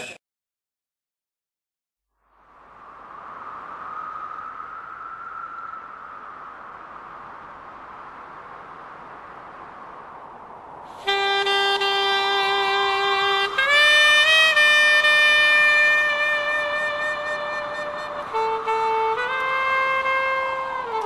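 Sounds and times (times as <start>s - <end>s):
steady hiss: 2.3s - 14.0s.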